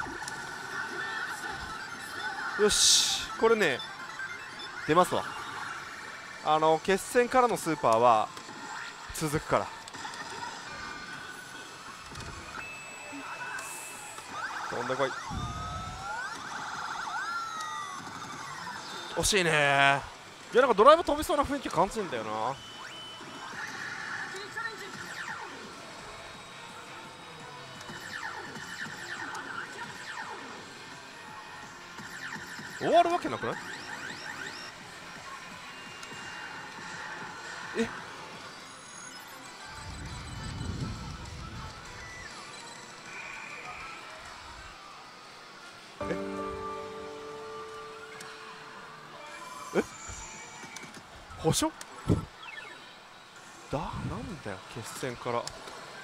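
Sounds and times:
electronic chord of steady tones: 0:46.0 - 0:49.2
slot machine game music: 0:46.0 - 0:49.2.

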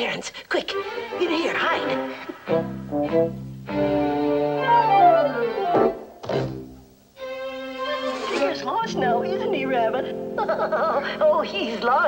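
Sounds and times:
orchestral strings score: 0:00.7 - 0:12.0.

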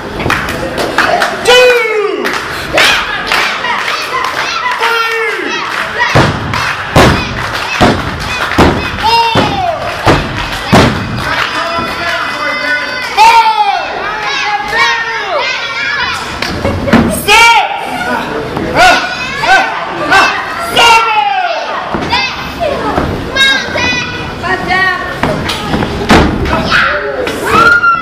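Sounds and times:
children shouting and cheering: 0:01.4 - 0:24.4, 0:26.4 - 0:28.0.

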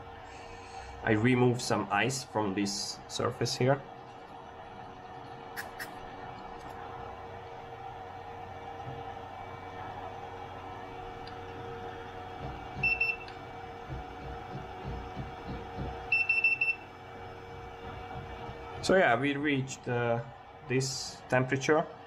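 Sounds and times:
steady low hum: 0:00.0 - 0:21.7
thermometer beeping: 0:12.7 - 0:13.4, 0:14.2 - 0:16.9.

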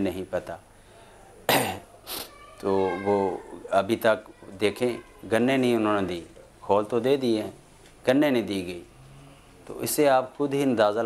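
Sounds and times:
man coughing: 0:01.5 - 0:01.9
short hiss: 0:02.0 - 0:02.4.

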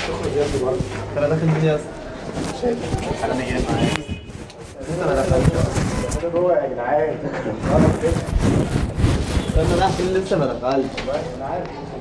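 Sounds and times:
rubbing scraping noise: 0:00.0 - 0:06.4, 0:07.5 - 0:11.4
faint voices: 0:00.0 - 0:12.0.

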